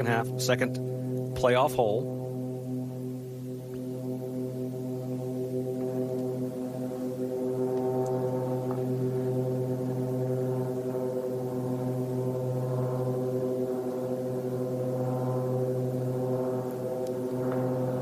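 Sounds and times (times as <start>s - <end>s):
steady low drone: 0.0s - 18.0s.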